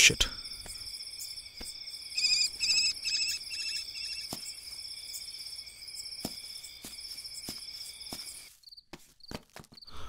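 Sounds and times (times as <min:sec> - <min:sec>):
crickets and insects chirring: 0:00.0 - 0:10.0
pulsed chirping call: 0:02.0 - 0:04.4.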